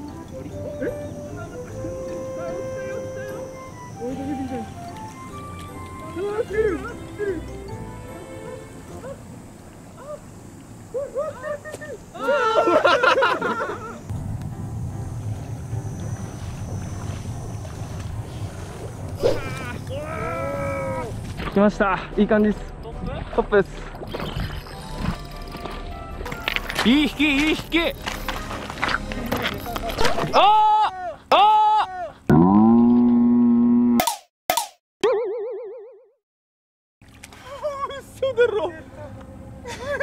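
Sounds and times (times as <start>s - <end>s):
man's long cry of dismay: 12.2s - 13.1s, 19.2s - 21.2s, 30.4s - 32.2s.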